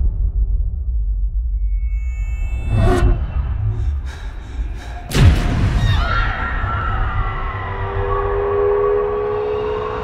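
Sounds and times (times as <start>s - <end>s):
low rumble: 0.0s - 8.0s
tense drone of held tones: 0.0s - 10.0s.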